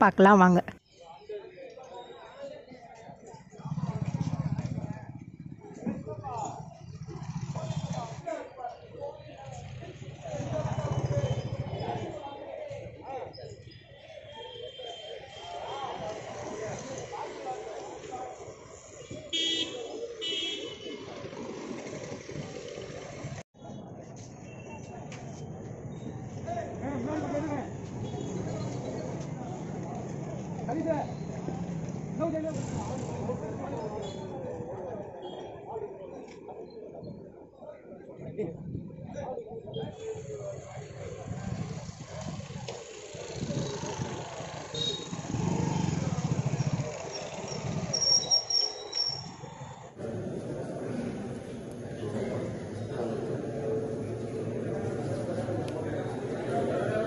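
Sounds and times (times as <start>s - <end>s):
street traffic noise: 0.0s - 57.0s
motorcycle engines rumbling: 3.0s - 14.3s, 15.1s - 57.0s
short high squeaks: 47.2s - 49.6s.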